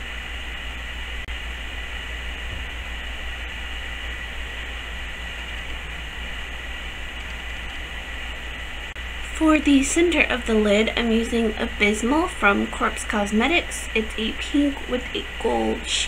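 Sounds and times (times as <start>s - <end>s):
low hum: 0.0s - 16.0s
steady background hiss: 0.0s - 16.0s.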